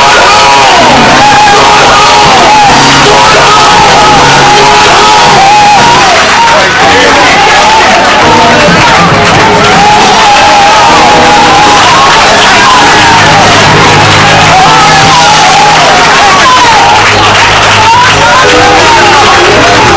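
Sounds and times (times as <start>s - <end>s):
congregation shouting and singing: 0.0s - 19.9s
loud church music: 0.0s - 19.9s.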